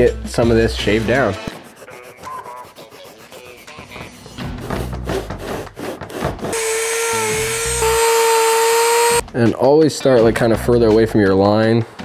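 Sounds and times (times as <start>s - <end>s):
rotary tool grinding foam: 1.5s - 9.2s
blade shaving foam: 5.1s - 9.2s.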